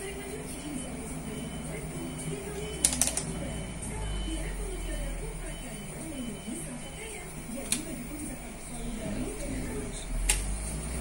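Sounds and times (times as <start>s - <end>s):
sharp clicks: 2.8s - 3.3s.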